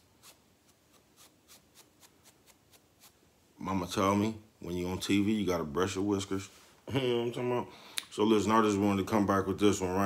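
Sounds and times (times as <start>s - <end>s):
brush strokes through beard: 0.0s - 3.3s.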